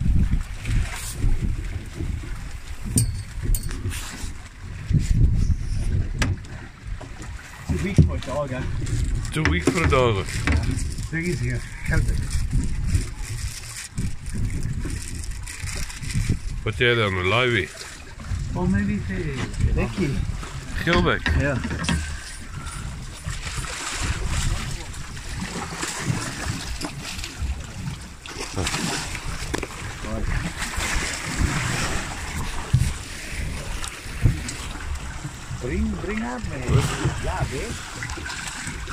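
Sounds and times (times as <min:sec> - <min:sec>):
boat engine rumble: 0:00.0 - 0:38.9
sea noise: 0:00.0 - 0:38.9
wind on microphone: 0:00.0 - 0:38.9
person speaking: 0:09.3 - 0:10.3.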